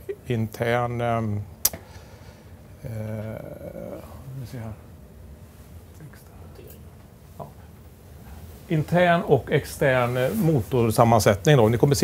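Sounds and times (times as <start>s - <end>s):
man saying uhh: 2.8s - 4.8s.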